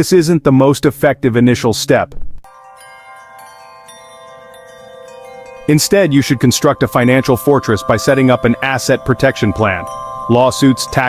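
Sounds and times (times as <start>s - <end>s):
soft chime-like chord music: 2.5s - 11.0s.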